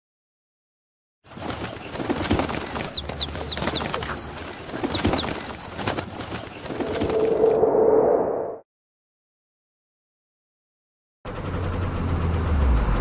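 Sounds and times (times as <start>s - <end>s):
wing flaps: 1.3s - 7.8s
cartoon bird twittering: 1.8s - 5.7s.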